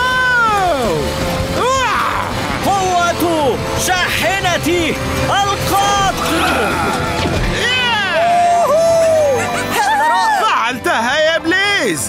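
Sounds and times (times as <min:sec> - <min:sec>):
background music: 0:00.0 - 0:12.0
cartoon voices exclaiming: 0:05.8 - 0:10.6.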